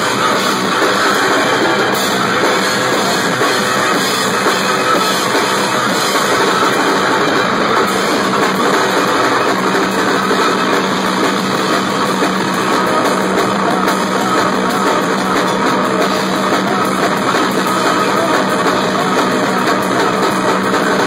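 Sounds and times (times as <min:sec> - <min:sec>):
distorted droning noise: 0:00.0 - 0:21.0
fast dense drumming: 0:00.0 - 0:21.0.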